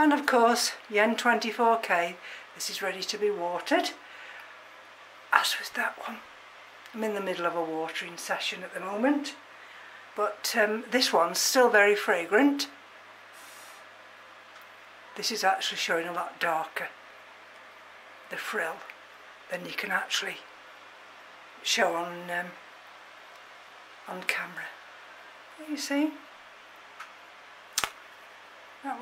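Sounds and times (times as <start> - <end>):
low steady hum: 0.0 - 29.0
quiet hiss: 0.0 - 29.0.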